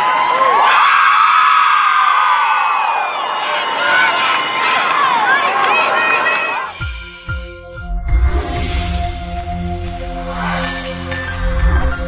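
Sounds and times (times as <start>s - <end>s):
women cheering and screaming: 0.0s - 6.8s
music with deep beat: 6.7s - 12.0s.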